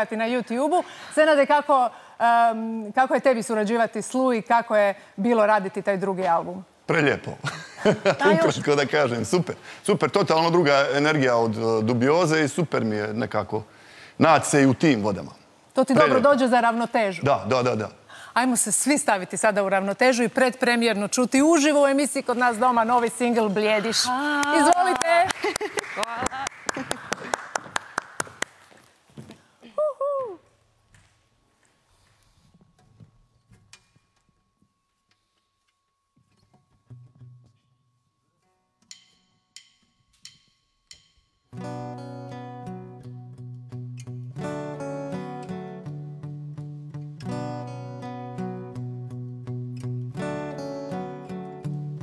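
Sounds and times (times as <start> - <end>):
people clapping: 23.8 - 28.9
acoustic guitar chords: 36.3 - 37.8, 41.5 - 52.0.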